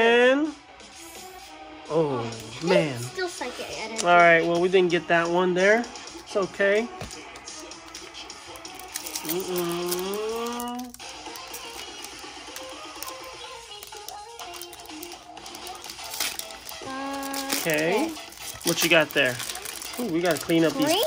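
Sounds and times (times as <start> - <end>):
foil pack crinkling and tearing: 8.5 - 21.0.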